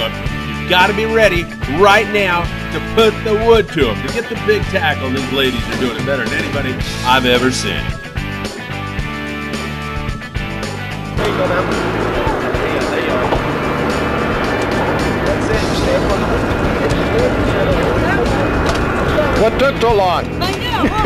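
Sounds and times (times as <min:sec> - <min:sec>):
anglers' voices: 0:00.0 - 0:08.8, 0:11.0 - 0:21.0
background music: 0:00.0 - 0:21.0
on-deck noise: 0:11.2 - 0:20.9.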